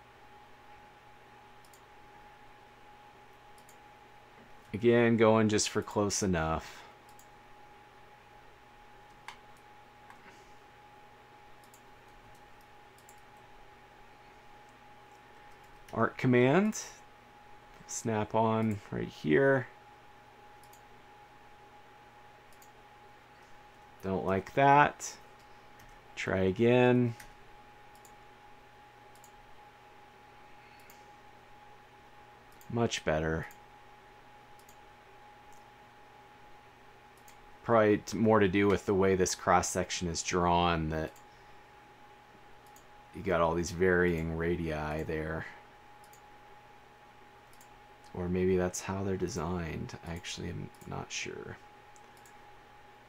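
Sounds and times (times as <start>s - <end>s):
faint steady hum: 0.0s - 53.0s
faint steady tone: 0.0s - 53.0s
computer mouse clicks: 1.6s - 1.9s, 3.5s - 3.8s, 7.0s - 7.3s, 9.0s - 10.2s, 11.6s - 13.4s, 20.6s - 20.9s, 22.5s - 22.8s, 27.2s - 28.2s, 29.1s - 29.4s, 30.7s - 31.0s, 34.5s - 34.8s, 35.5s - 35.7s, 37.2s - 37.4s, 42.6s - 42.9s, 46.0s - 46.2s, 47.5s - 48.2s, 51.9s - 52.4s.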